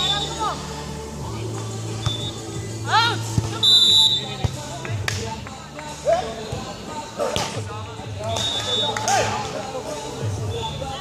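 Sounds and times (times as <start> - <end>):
people talking: 0.0 - 0.6.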